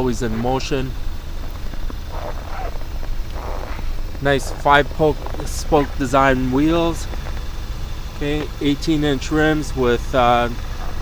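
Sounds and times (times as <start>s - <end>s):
steady low rumble: 0.0s - 11.0s
footsteps on packed snow: 1.3s - 6.2s.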